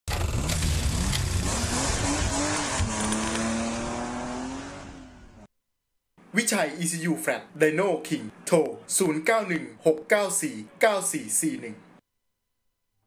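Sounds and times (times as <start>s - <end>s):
car engine revving: 0.1s - 5.5s.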